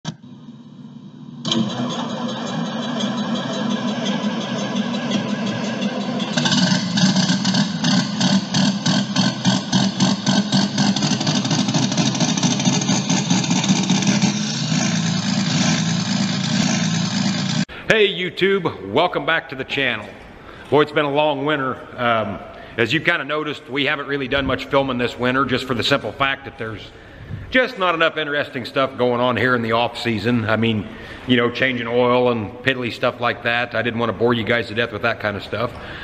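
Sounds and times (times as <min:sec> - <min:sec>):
engine running: 0:00.1 - 0:17.7.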